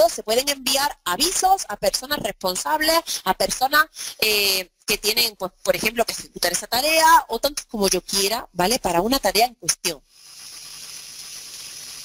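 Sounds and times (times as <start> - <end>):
high-pitched microphone hiss: 9.6 - 12.0.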